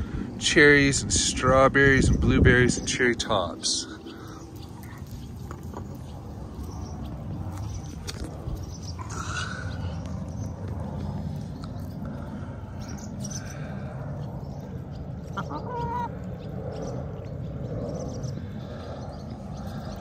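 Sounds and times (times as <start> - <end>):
low rumble: 0.0 - 20.0
hens clucking: 15.1 - 16.5.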